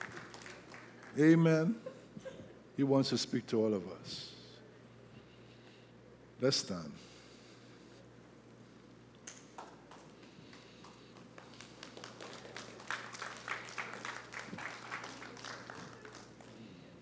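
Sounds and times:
congregation clapping: 0.0 - 1.4, 9.3 - 16.8.

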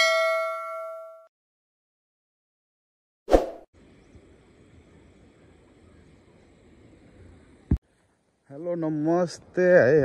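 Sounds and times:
pop and whoosh sound effect: 3.3 - 3.7
faint outdoor background noise: 3.8 - 10.0.

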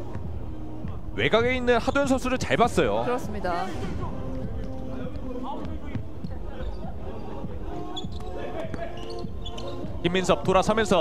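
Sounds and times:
faint players' voices: 0.0 - 11.0.

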